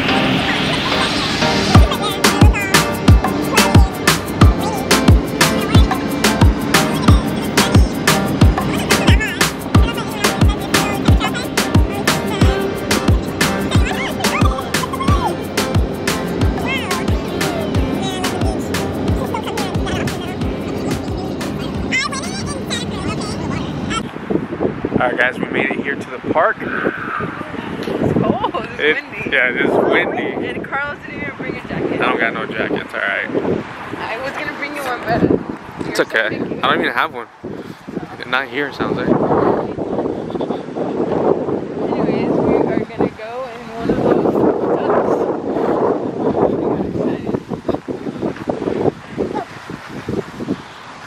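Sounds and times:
music with vocals: 0.0 - 22.7
faint voices: 0.0 - 24.1
car road noise: 0.0 - 51.0
wind buffeting microphone: 0.0 - 51.0.

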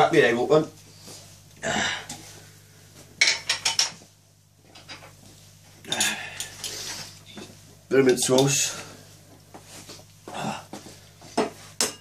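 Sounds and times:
glass and bottles clinking: 3.2 - 4.0.

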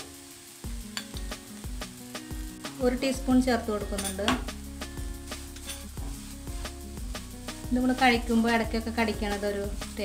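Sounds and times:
background music with held notes: 0.0 - 10.0
spatula scraping a frying pan: 5.3 - 6.8.

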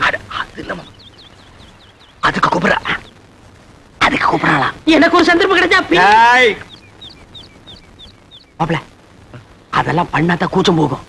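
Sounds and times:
small bird chirping: 0.0 - 3.4, 5.3 - 10.2.

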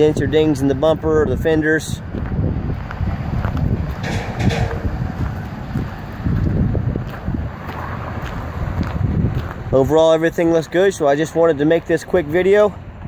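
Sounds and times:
wind blowing across microphone: 0.0 - 13.0.

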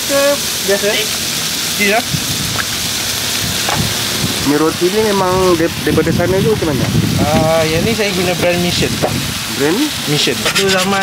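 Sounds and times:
food sizzling on a griddle: 0.0 - 11.0.

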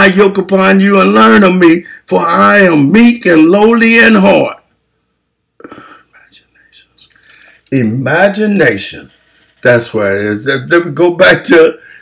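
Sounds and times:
man whispering: 5.6 - 7.8.

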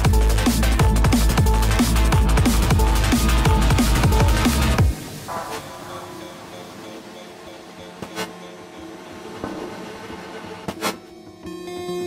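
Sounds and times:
sustained synth tones: 4.9 - 10.7.

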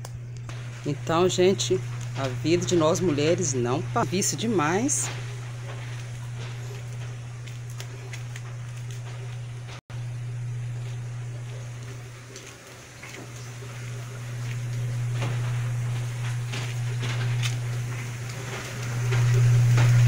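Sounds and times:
washing machine motor humming: 0.0 - 20.0.

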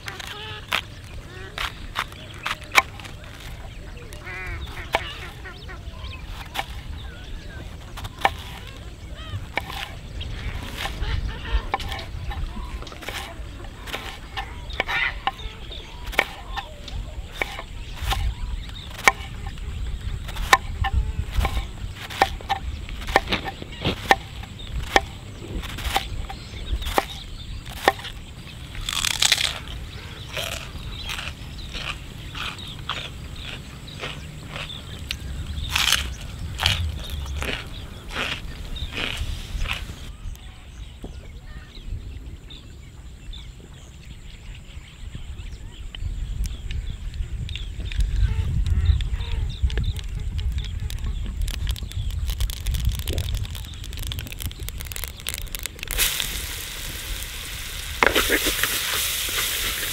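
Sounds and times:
knife cutting cabbage on wooden board: 9.6 - 9.9, 13.0 - 15.4, 16.0 - 16.7, 17.3 - 18.3, 20.3 - 26.3, 26.9 - 28.1.

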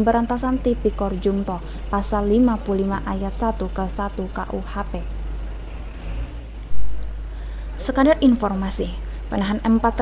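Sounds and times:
bus engine idling: 0.0 - 10.0
loud thump: 6.7 - 7.1.

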